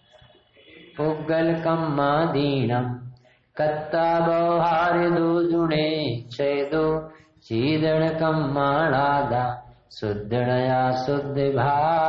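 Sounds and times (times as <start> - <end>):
man chanting: 0.6 - 12.0
man breathing: 3.2 - 3.6, 7.1 - 7.4.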